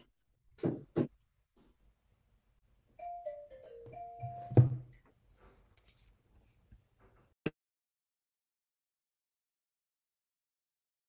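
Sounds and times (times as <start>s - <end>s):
electronic chime melody: 3.0s - 4.9s.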